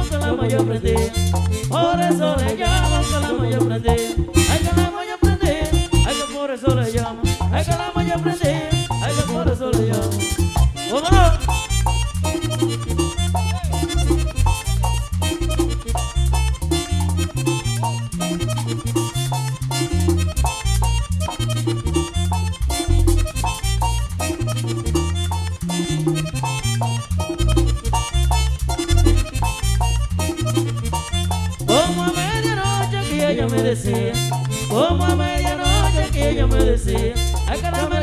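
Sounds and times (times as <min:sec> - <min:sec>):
accordion: 0:00.0 - 0:38.0
bass line: 0:00.0 - 0:38.0
fast steady percussion: 0:00.0 - 0:38.0.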